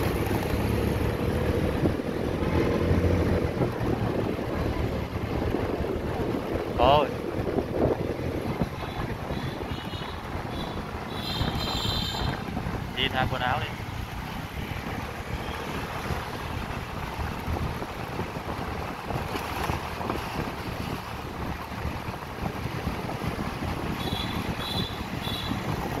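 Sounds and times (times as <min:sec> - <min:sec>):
traffic rumble: 0:00.0 - 0:26.0
wind rushing over microphone: 0:00.0 - 0:26.0.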